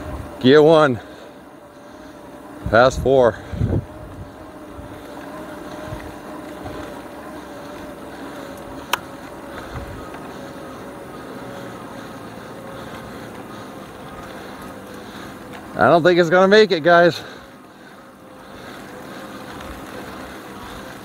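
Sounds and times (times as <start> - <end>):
electric motor whining: 0.0 - 21.0
wind: 0.0 - 21.0.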